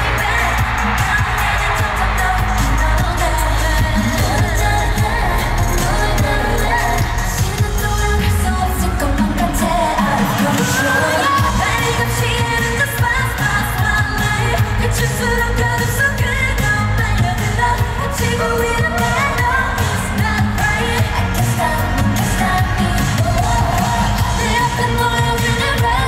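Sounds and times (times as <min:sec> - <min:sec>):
women singing over synth-pop: 0:00.0 - 0:26.0.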